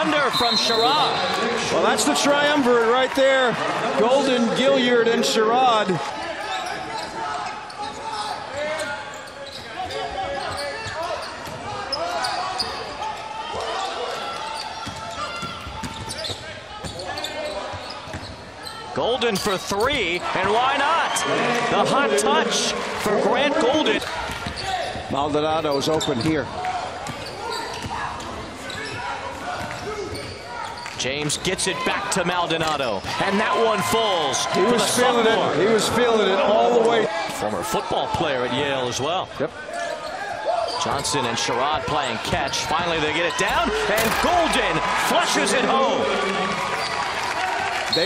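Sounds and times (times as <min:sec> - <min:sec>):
players calling out: 0:00.0 - 0:18.0, 0:18.6 - 0:25.1, 0:39.7 - 0:48.0.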